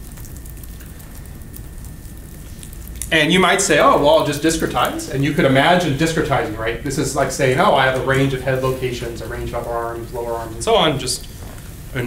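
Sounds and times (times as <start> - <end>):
faint crackling: 0.0 - 12.0
thin high hum: 0.0 - 12.0.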